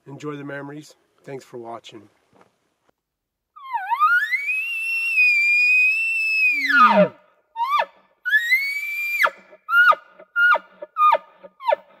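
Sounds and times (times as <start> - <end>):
elk bugling whistle: 3.6 - 11.8.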